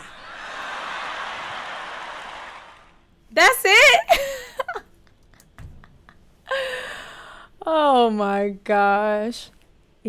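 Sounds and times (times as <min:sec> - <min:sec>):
audience applauding: 0:00.0 - 0:03.0.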